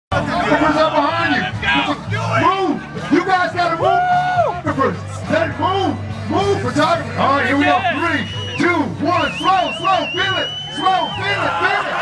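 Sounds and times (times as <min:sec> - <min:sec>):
group of people shouting: 0:03.7 - 0:04.7, 0:10.4 - 0:12.0.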